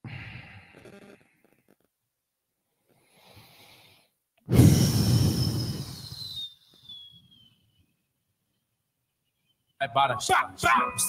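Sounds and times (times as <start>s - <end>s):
breathy exhale: 0.0s - 0.9s, 2.9s - 6.6s
thin falling whistle: 4.6s - 8.0s.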